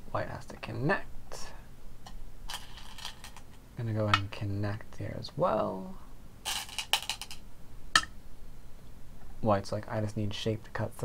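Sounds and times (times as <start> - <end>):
game stones clattering together: 2.5 - 3.5, 6.5 - 7.4.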